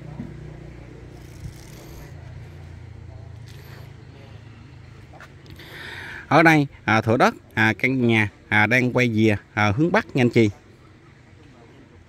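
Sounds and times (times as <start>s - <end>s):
vehicle engine hum: 0.0s - 6.2s.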